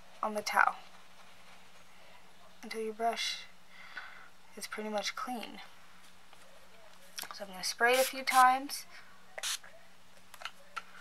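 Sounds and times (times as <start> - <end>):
spray bottle hiss: 9.4 - 9.6.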